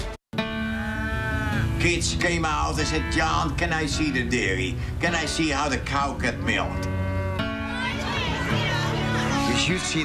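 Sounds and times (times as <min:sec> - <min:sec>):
quiet music: 0:00.4 - 0:10.0.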